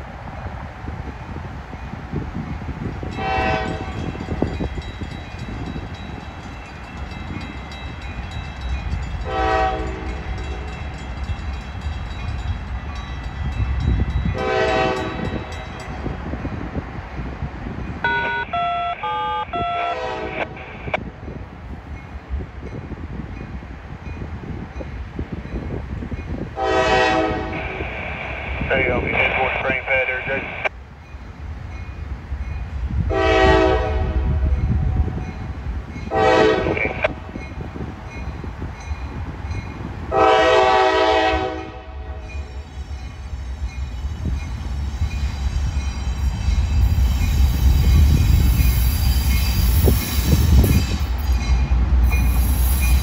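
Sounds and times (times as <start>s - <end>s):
low train rumble: 0.0s - 53.0s
train horn blasts: 3.1s - 4.2s, 9.2s - 10.7s, 14.3s - 15.6s, 18.0s - 21.0s, 26.6s - 27.9s, 33.1s - 35.2s, 36.1s - 37.2s, 40.1s - 42.7s
stepped shifting tones: 18.0s - 21.0s.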